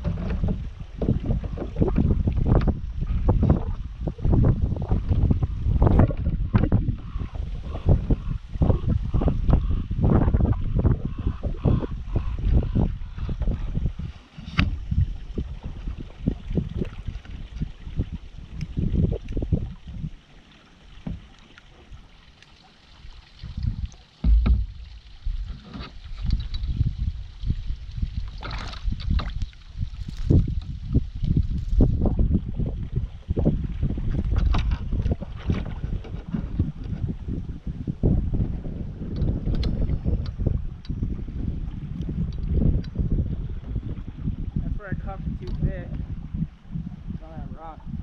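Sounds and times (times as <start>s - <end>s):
wind rumble on microphone: 0.0s - 22.2s, 23.0s - 48.0s
paddle strokes and splashes: 0.0s - 46.7s
knocks against boat hull: 24.2s - 24.8s.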